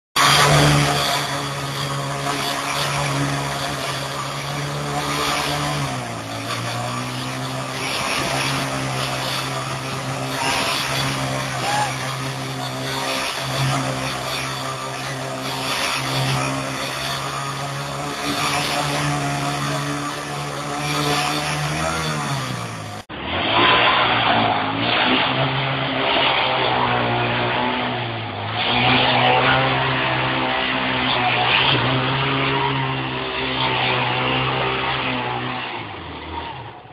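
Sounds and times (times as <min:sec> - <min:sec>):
motorcycle engine revving: 0:00.2 - 0:36.9.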